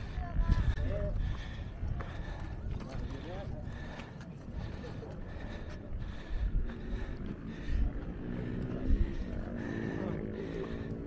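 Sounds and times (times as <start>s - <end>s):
people talking: 0.0s - 6.1s
wind buffeting microphone: 0.0s - 11.0s.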